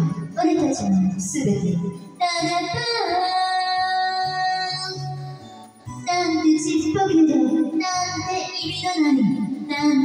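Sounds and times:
instrumental backing track: 0.0s - 10.0s.

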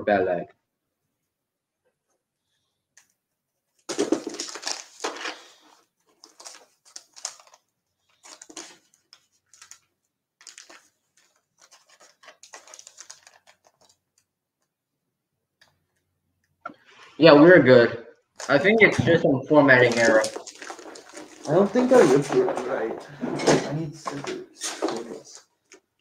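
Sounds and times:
plastic packets rustling: 3.8s - 14.3s, 18.4s - 18.8s, 19.6s - 26.0s.

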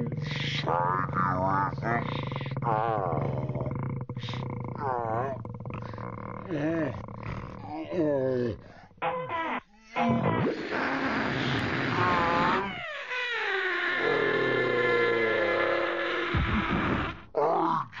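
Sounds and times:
balloon squealing: 9.0s - 17.6s.

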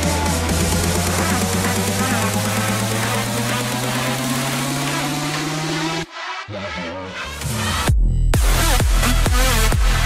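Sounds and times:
fast pulsing beat: 0.0s - 6.1s
rushing noise riser: 0.0s - 7.9s
low synth tone climbing: 0.0s - 8.4s.

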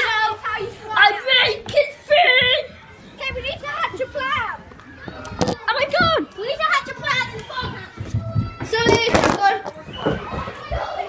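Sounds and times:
children calling out in play: 0.0s - 11.0s.

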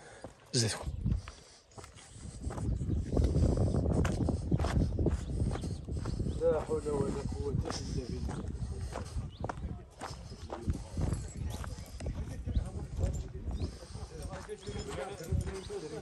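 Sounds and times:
people talking indistinctly: 0.0s - 16.0s
footsteps on gravel: 0.2s - 16.0s.

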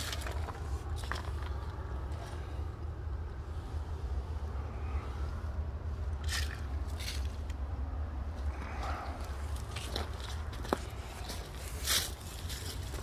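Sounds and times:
footsteps on gravel and leaves: 0.0s - 2.5s, 6.2s - 7.6s, 9.2s - 13.0s
steady low rumble: 0.0s - 13.0s.

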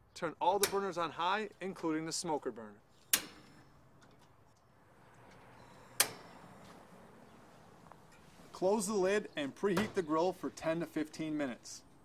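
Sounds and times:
metallic grill ignition click: 6.0s - 6.3s.

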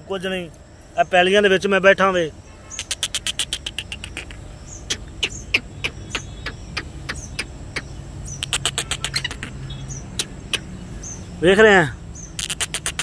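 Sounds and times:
bird clicking notes: 2.8s - 9.6s, 12.4s - 13.0s.

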